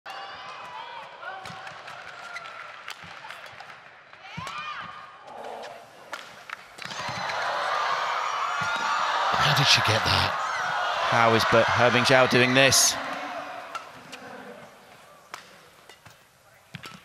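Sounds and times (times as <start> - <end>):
crowd noise: 5.2 - 16.8.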